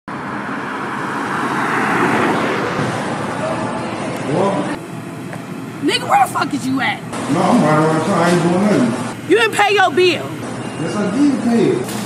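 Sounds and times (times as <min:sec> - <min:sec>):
road traffic: 0:00.1 - 0:12.0
indistinct voices: 0:05.8 - 0:07.9.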